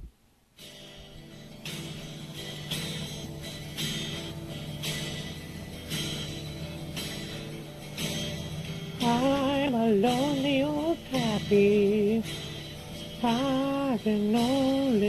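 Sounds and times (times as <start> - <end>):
guitar strumming open strings: 0.6 - 15.0.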